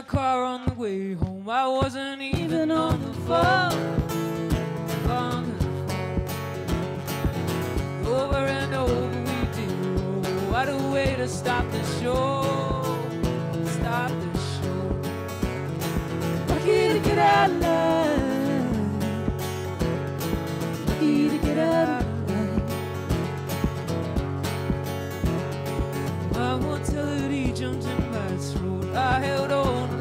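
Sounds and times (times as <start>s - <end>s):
woman singing: 0.0s - 4.2s, 5.0s - 5.8s, 16.4s - 19.4s, 20.8s - 22.9s
acoustic guitar strumming: 0.0s - 30.0s.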